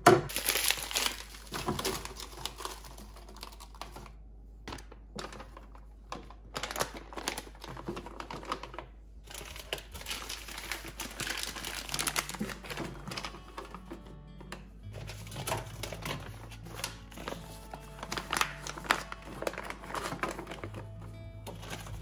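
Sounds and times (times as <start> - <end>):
plastic bags crinkling: 0.3 - 22.0.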